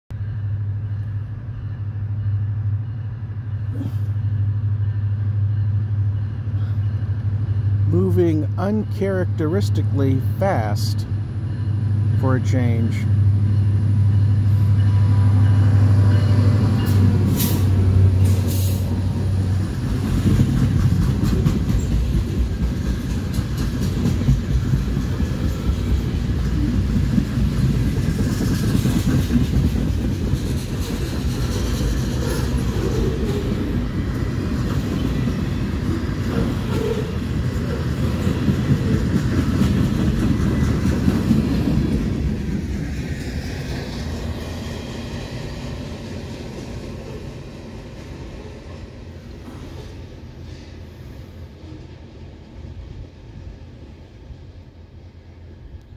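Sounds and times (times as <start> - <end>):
diesel locomotive engine drone: 0.1 - 55.9.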